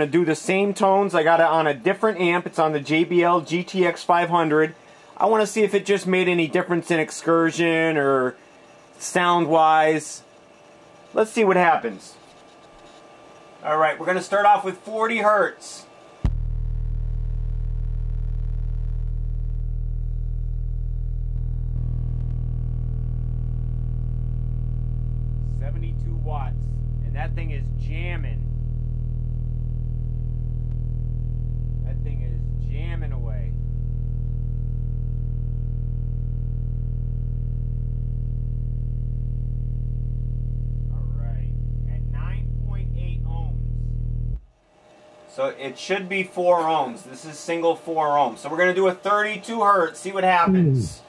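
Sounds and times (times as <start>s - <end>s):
subwoofer playing low test tone: 16.2s - 44.5s, 50.5s - 51.0s.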